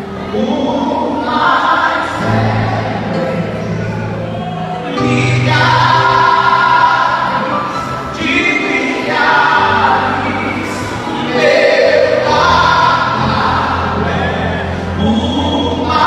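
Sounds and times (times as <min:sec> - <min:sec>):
man singing gospel song: 0:00.2 - 0:02.8, 0:04.8 - 0:16.0.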